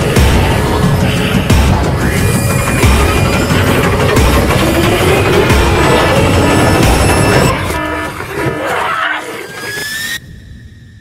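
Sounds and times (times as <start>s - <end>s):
low rumbling horror drone: 0.0s - 8.7s.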